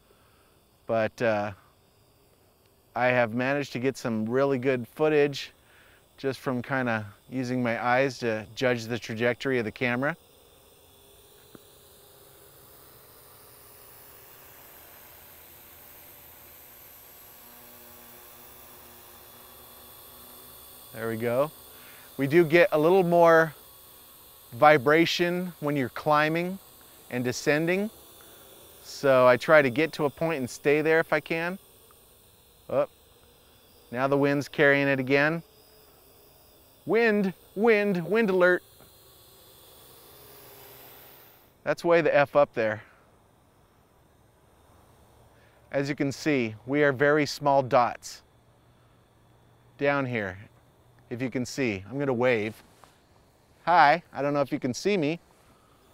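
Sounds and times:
faint steady hiss: 0:00.0 - 0:55.9
quadcopter motors humming: 0:00.0 - 0:55.9.

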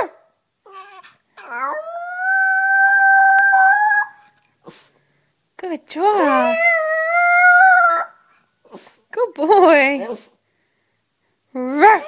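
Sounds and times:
dog howling: 0:00.7 - 0:04.3, 0:06.2 - 0:08.2.

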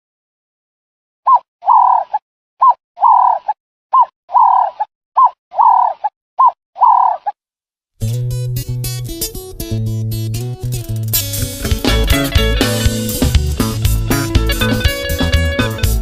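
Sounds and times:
dove cooing: 0:01.3 - 0:02.2, 0:03.0 - 0:03.4, 0:04.4 - 0:04.8, 0:05.6 - 0:07.3.

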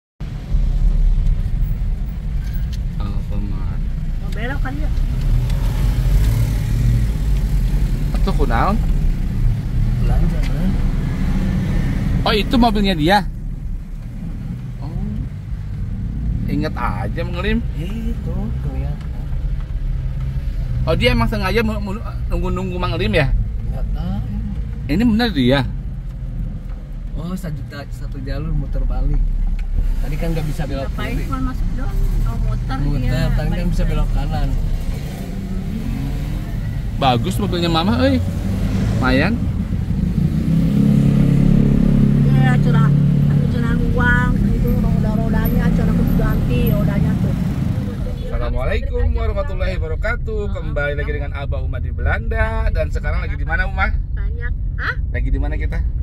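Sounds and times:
car engine rumble: 0:00.2 - 0:56.0.

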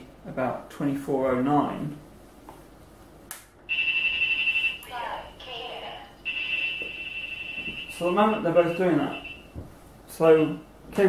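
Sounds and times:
radar detector high alert tone: 0:03.7 - 0:09.6.

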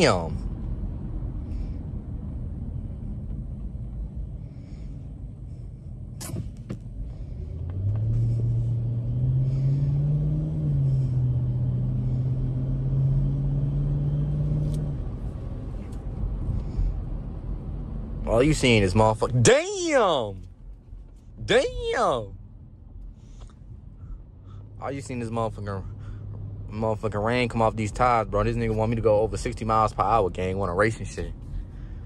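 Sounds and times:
car engine accelerating: 0:00.0 - 0:32.0
road rumble inside car: 0:00.0 - 0:32.0.

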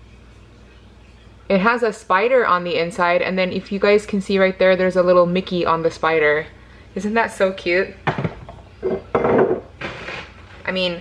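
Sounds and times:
kitchenware knocking on counter: 0:08.0 - 0:09.7
kitchenware clattering: 0:08.0 - 0:10.1.

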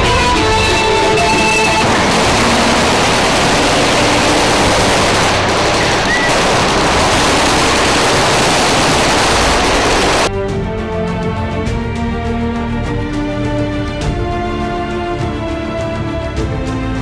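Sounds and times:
loud even rush of noise: 0:00.0 - 0:10.3.

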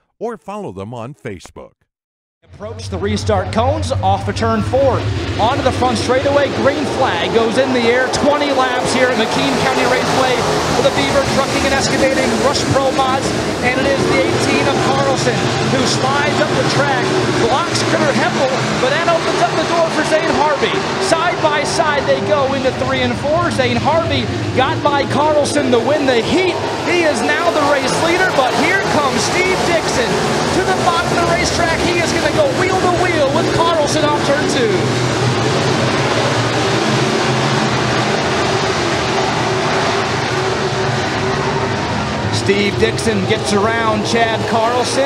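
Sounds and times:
race car engines revving: 0:02.5 - 0:45.0.

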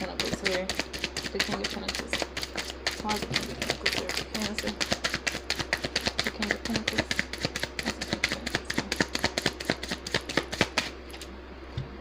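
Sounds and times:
cards being shuffled: 0:00.0 - 0:11.2.

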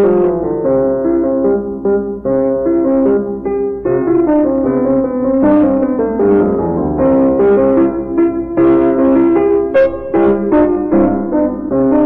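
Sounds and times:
solo piano classical piece: 0:00.0 - 0:12.0.

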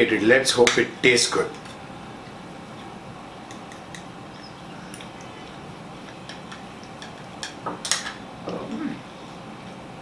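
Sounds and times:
forks clicking on plates: 0:03.4 - 0:08.2.

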